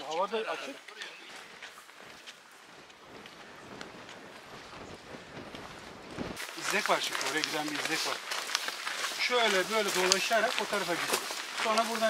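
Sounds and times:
footsteps on stony path: 0.0s - 12.0s.

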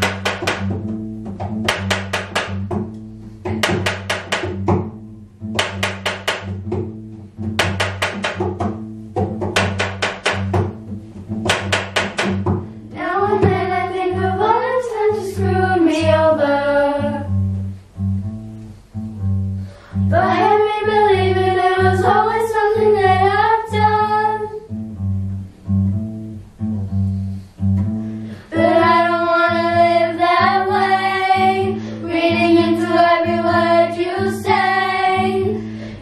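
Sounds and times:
children singing: 12.9s - 17.3s, 20.1s - 24.7s, 28.5s - 35.6s.

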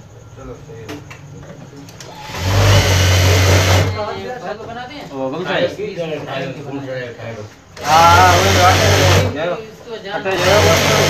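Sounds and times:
sewing machine stitching: 2.0s - 4.1s, 7.8s - 9.4s, 10.3s - 11.0s.

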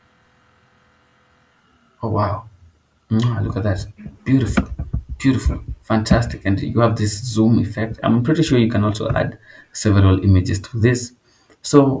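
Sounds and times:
thin steady hum: 0.0s - 12.0s
background hiss: 1.0s - 12.0s.

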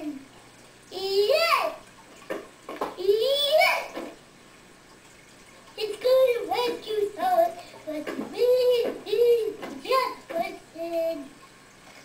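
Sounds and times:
child singing: 5.8s - 11.3s.

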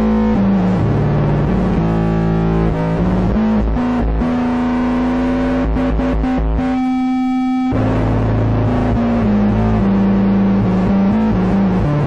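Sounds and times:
bass guitar: 0.0s - 12.0s
distorted electric guitar: 0.0s - 12.0s.

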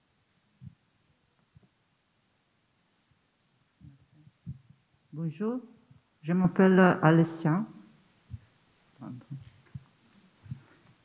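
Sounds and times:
microphone handling thumps: 3.8s - 4.8s, 8.3s - 11.0s.

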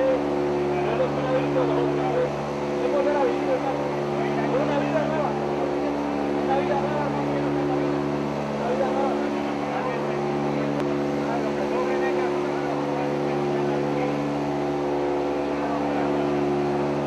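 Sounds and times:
people talking: 0.0s - 17.0s
vehicle engine drone: 0.0s - 17.0s.

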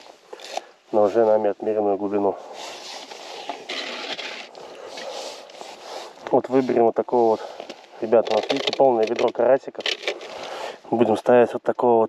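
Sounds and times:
rustling and light scraping: 0.0s - 11.2s.

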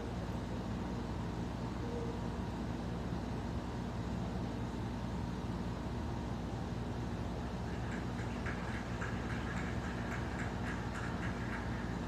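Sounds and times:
ceiling fan humming: 0.0s - 12.0s
fan ticking: 7.4s - 12.0s.

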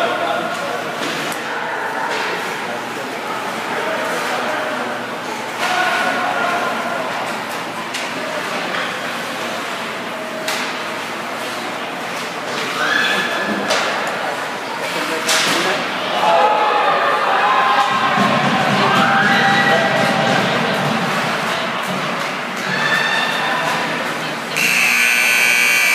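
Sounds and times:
spectators chattering and shouting: 0.0s - 25.9s.

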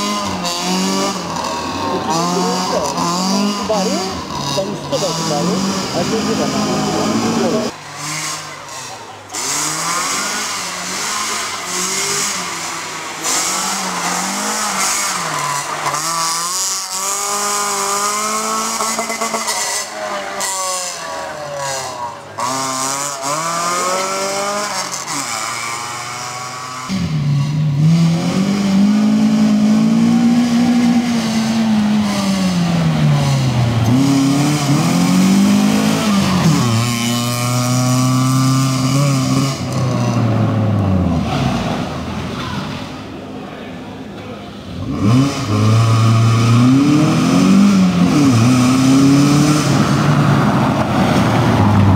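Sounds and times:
rally car engine revving: 0.0s - 51.9s.

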